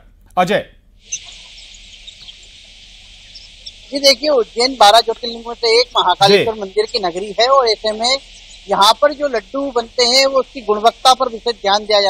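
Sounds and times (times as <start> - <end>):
small birds chirping: 1.0 - 12.0
steady hiss: 1.0 - 12.0.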